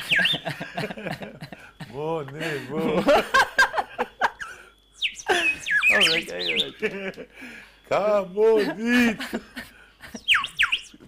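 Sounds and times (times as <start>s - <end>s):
toy whistle chirps: 0.0s - 0.6s, 4.2s - 6.9s, 10.0s - 11.0s
person laughing: 0.0s - 4.6s, 5.2s - 5.8s, 8.4s - 10.4s.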